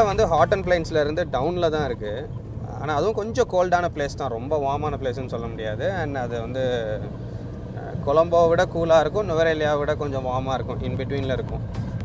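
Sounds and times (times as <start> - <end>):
man speaking: 0.0 - 7.1, 7.8 - 11.7
van engine and tyres hum: 0.0 - 12.0.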